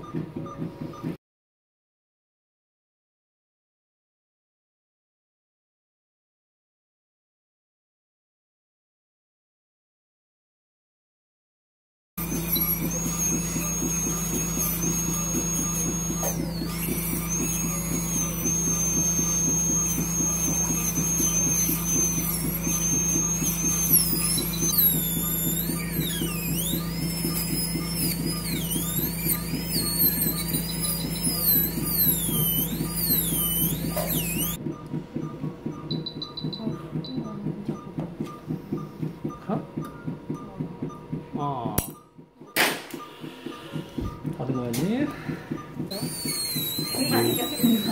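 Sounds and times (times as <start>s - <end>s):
dental drill whining: 12.2s - 47.9s
faint repeating pulsing: 12.2s - 47.9s.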